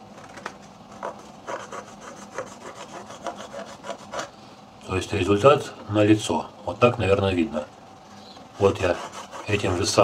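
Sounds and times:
fingernail scratching painted wood: 1.0s - 4.3s, 8.6s - 10.0s.

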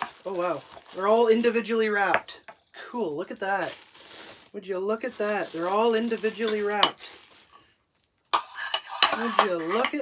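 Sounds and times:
plastic wrapping rustling: 0.0s - 10.0s
metal cookware clinking: 8.3s - 10.0s.

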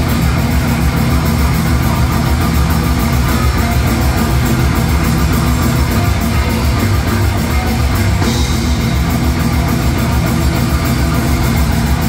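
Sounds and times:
thrash metal band playing: 0.0s - 12.0s.

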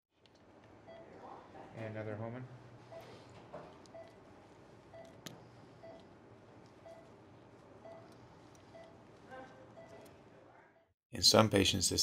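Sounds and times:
patient monitor beeps: 0.8s - 1.4s, 2.8s - 7.2s, 7.8s - 10.9s.

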